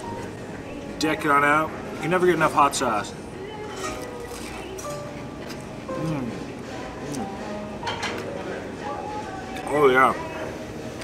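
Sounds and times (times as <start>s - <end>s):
soft background music: 0.0s - 11.0s
man humming: 5.9s - 7.4s.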